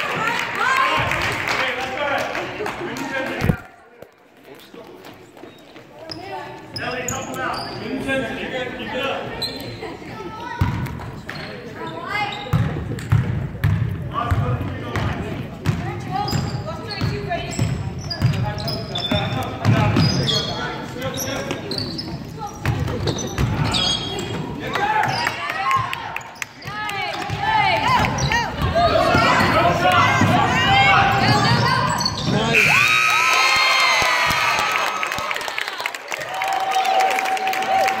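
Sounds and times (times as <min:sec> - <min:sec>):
voices echoing in hall: 0:00.0 - 0:38.0.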